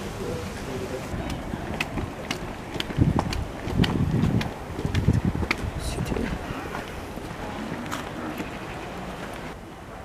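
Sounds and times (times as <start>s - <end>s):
wind buffeting microphone: 0.0s - 9.6s
footsteps: 1.1s - 9.6s.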